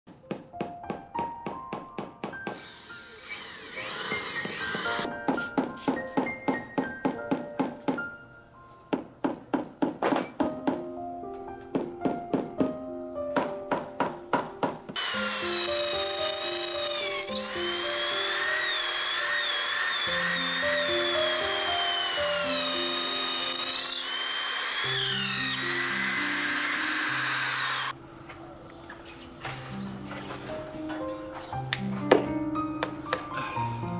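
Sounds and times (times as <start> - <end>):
background music: 0.1 - 28.0, 29.3 - 33.9.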